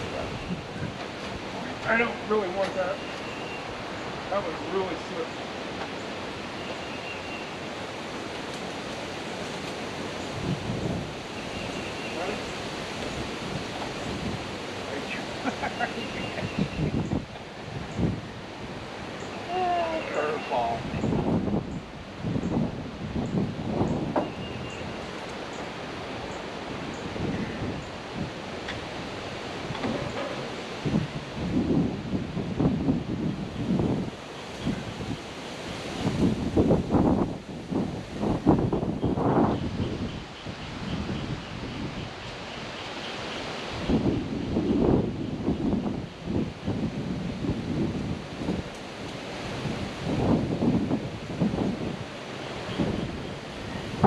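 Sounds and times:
wind gusting on microphone: 0:00.0 - 0:54.0.

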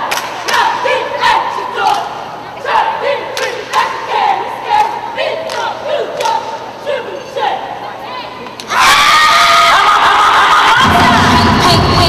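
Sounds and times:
cheerleaders shouting a chant: 0:00.0 - 0:12.0.

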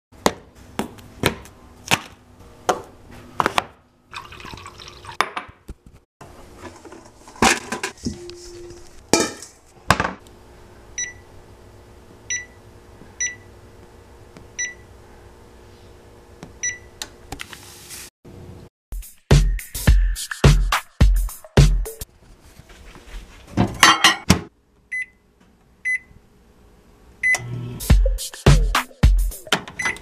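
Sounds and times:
kitchen clatter: 0:06.6 - 0:08.1, 0:09.1 - 0:10.1, 0:23.6 - 0:24.5
appliance keypad beeps: 0:11.0 - 0:11.2, 0:12.3 - 0:12.6, 0:13.2 - 0:13.4, 0:14.6 - 0:14.8, 0:16.6 - 0:16.9, 0:24.9 - 0:25.2, 0:25.9 - 0:26.1, 0:29.8 - 0:30.0.

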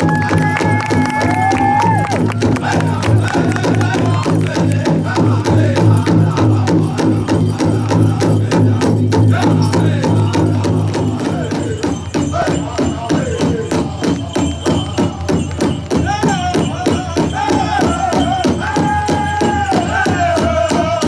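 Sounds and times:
drum group playing fast drumbeat: 0:00.0 - 0:21.0
singers holding high notes: 0:00.0 - 0:21.0.

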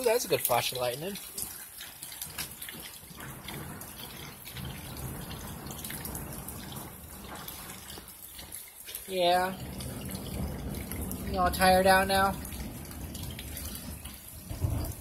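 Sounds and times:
rain falling steadily: 0:00.0 - 0:15.0
water dripping and trickling: 0:00.0 - 0:15.0.

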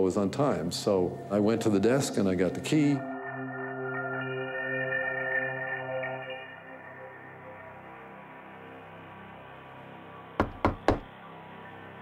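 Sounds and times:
soft ambient music: 0:00.0 - 0:12.0
knocks on wooden door: 0:10.4 - 0:11.1.

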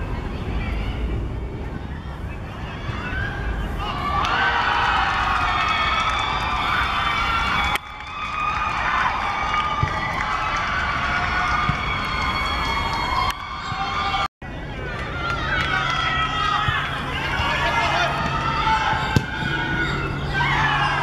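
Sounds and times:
young voices cheering and shouting: 0:01.9 - 0:21.0.

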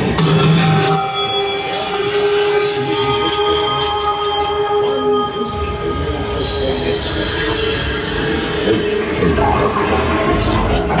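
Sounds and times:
noisy layer: 0:00.0 - 0:11.0
drone of held tones: 0:00.4 - 0:09.2.

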